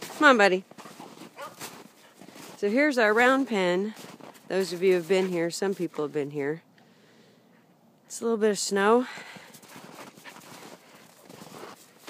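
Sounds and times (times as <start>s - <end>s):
footsteps in snow: 0.0s - 6.4s, 9.0s - 12.0s.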